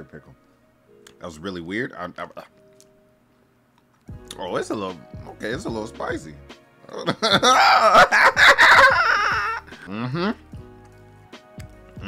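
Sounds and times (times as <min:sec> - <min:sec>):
people talking: 0:04.4 - 0:07.4.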